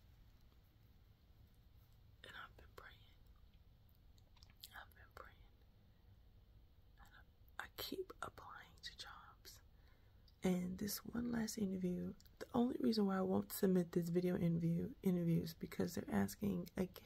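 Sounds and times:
woman whispering: 2.2s - 3.4s, 4.6s - 5.7s, 7.0s - 9.7s, 10.3s - 17.0s.

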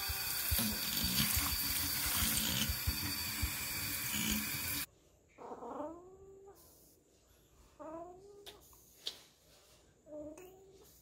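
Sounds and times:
sink tap running: 0.0s - 4.9s.

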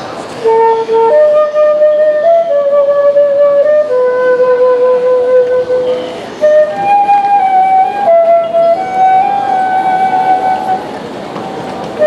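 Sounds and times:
wind instrument melody: 0.0s - 11.2s
street noise: 0.0s - 12.0s.

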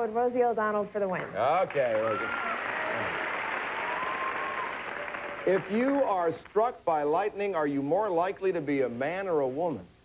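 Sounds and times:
audience applauding: 1.4s - 6.6s.

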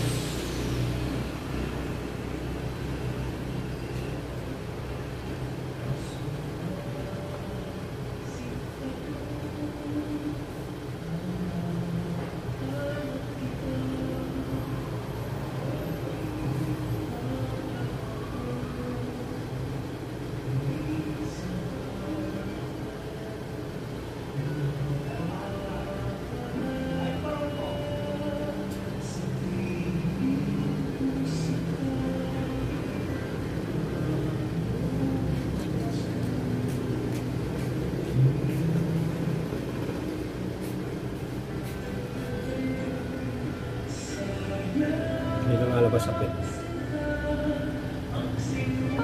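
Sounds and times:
indistinct background voices: 0.0s - 49.0s
steady low hum: 0.0s - 49.0s.

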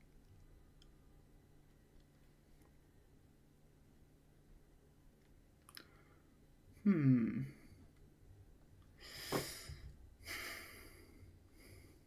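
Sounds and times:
voiced hmm: 6.8s - 7.7s.

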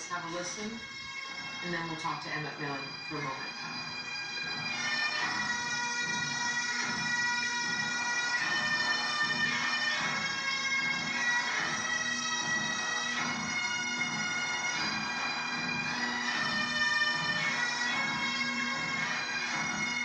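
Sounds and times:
massed bagpipes playing: 0.0s - 20.0s.

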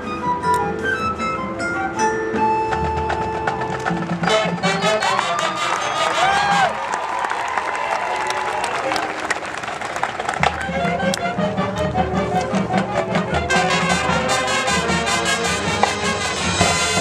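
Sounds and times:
marching band brass and percussion: 0.0s - 17.0s.

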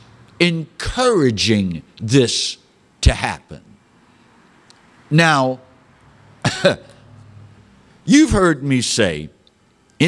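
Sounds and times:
man coughing: 6.4s - 7.1s.

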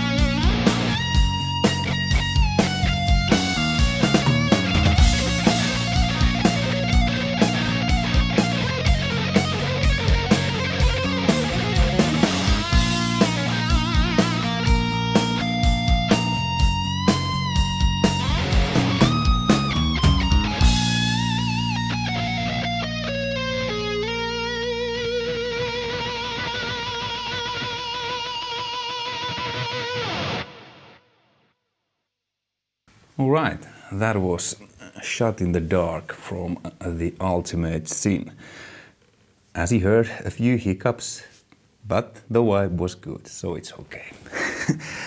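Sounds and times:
drums and bass: 0.0s - 24.9s
overdriven electric guitar lead: 0.0s - 31.2s.

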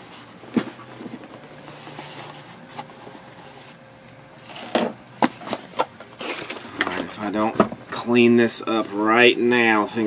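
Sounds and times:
low room hum: 0.0s - 10.0s
cards and wrappers rustling: 4.4s - 7.6s.

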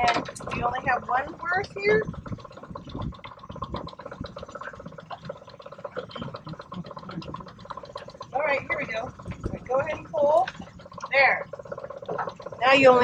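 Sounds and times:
outboard motor running: 0.0s - 13.0s.

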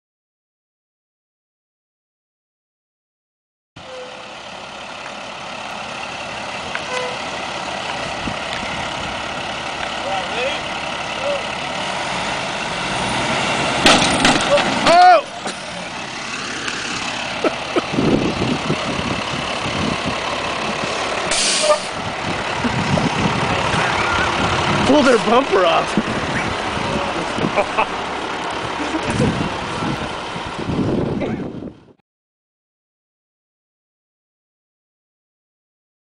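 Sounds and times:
diesel engine running: 3.8s - 32.0s
people shouting: 14.5s - 15.4s
short hiss: 21.3s - 21.9s.

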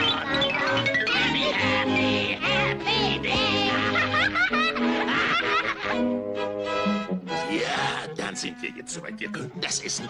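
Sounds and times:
orchestral cartoon music: 0.0s - 10.0s.

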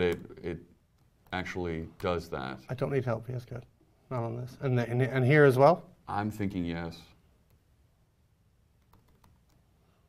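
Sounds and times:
laptop keystrokes: 8.8s - 9.6s.

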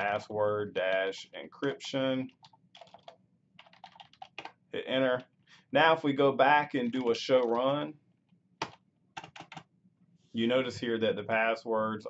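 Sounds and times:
keyboard keystrokes: 8.6s - 9.6s.

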